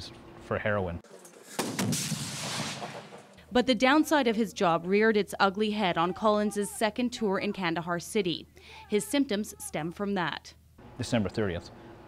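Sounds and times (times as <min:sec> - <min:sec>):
gunshots: 0:01.5 - 0:03.4.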